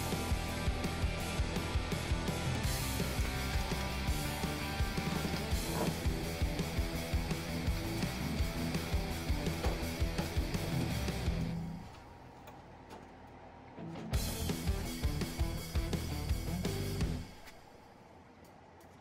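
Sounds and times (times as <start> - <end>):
guitar music with steady beat: 0.0 - 11.8, 14.0 - 17.4.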